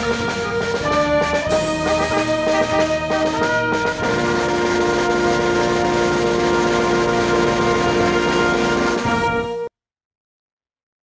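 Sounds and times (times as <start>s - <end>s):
brass and saxophone ensemble: 0.0s - 9.7s.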